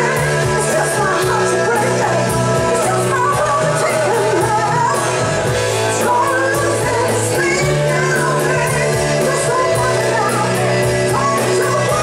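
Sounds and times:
drums: 0.0 - 12.0
electric guitars: 0.0 - 12.0
woman singing: 0.0 - 12.0.

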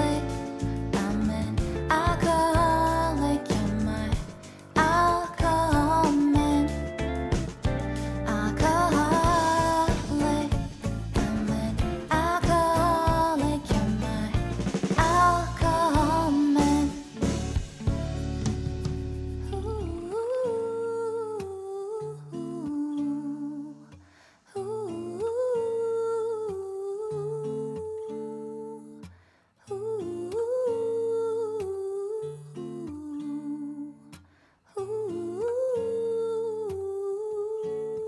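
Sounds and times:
guitar chords: 0.0 - 23.4.

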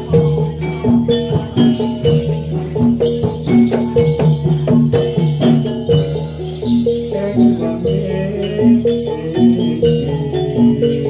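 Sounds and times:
drum strokes: 0.0 - 11.0
struck metal keys melody: 0.0 - 11.0.

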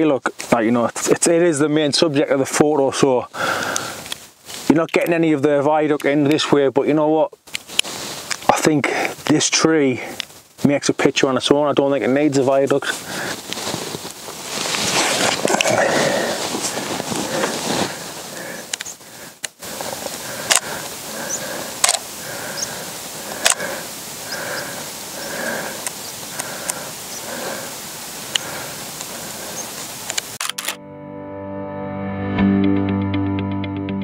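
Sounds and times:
camera shutter clicks: 20.5 - 20.7, 21.8 - 22.0, 23.4 - 23.6, 30.0 - 30.8
music: 30.5 - 34.0.

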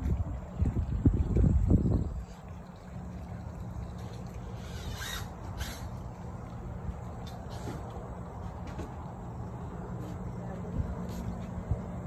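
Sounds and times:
low rumble on microphone: 0.0 - 12.0.

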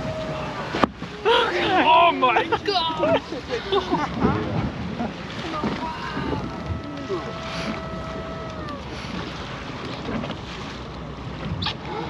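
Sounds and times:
boat and sea water noise: 0.0 - 12.0
wind buffeting microphone: 2.5 - 10.6.

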